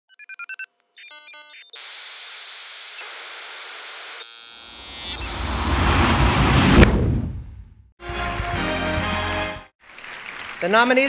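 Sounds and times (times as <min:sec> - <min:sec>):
static hiss: 0:01.8 - 0:05.3.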